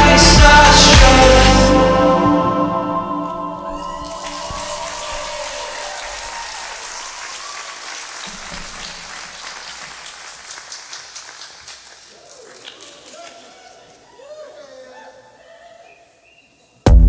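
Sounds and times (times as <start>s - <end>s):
audience applauding: 3.7s - 14.2s.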